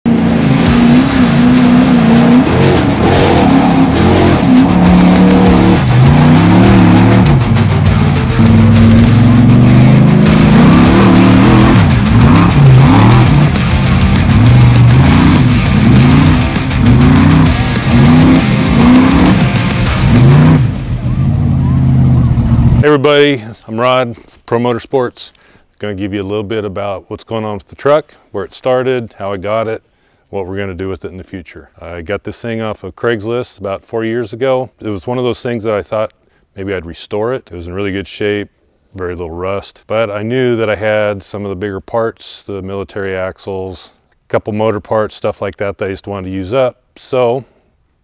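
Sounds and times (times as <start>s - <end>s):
truck engine revving in mud: 0.1s - 22.8s.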